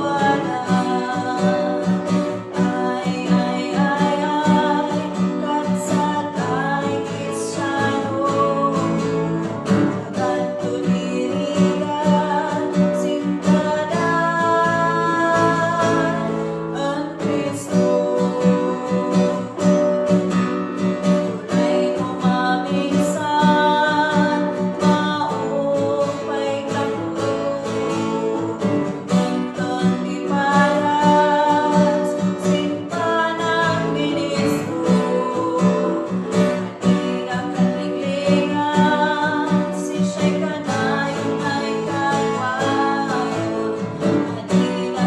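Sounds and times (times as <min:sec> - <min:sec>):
girl singing gospel song: 0:00.0 - 0:45.0
instrumental accompaniment: 0:00.0 - 0:45.0.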